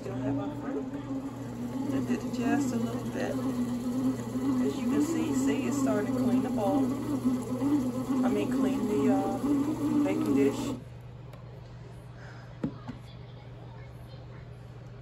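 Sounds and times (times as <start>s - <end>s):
bread machine motor whining: 0.0s - 10.8s.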